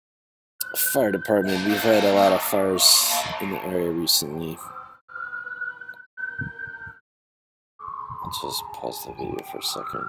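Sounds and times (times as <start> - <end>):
fire truck siren wailing: 0.6 - 7.0, 7.8 - 10.0.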